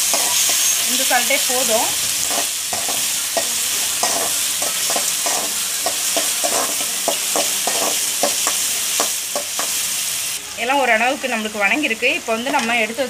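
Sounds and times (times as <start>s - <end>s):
vegetables sizzling in hot oil: 0.0s - 13.0s
spoon scraping and tapping pan: 2.2s - 9.8s.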